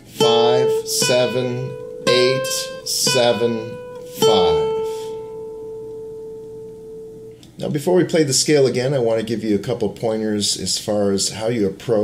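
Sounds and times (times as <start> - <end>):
classical guitar note ringing: 0.0 - 7.7.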